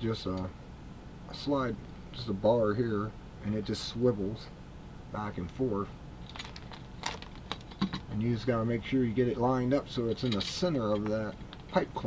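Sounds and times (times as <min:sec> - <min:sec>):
metal parts clicking and tapping: 0:06.3 - 0:08.1, 0:10.0 - 0:11.9.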